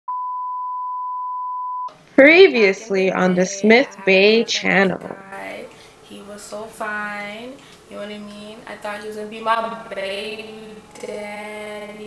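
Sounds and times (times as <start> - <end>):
long electronic beep: 0.1 - 1.9.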